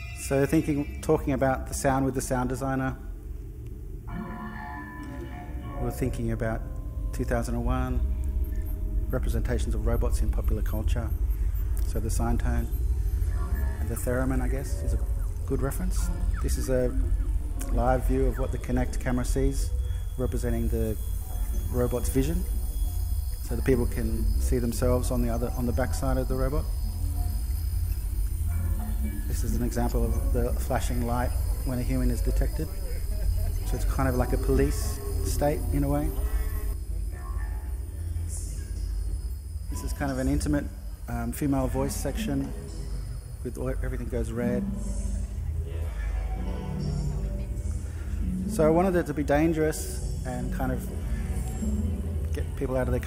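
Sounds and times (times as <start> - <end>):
low electronic drone: 0.0 - 53.0
held high electronic tones: 4.1 - 45.3
low rumble: 5.5 - 53.0.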